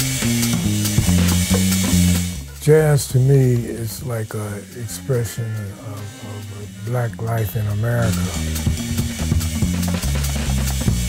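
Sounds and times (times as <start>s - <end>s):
electric bass line: 0.0s - 11.0s.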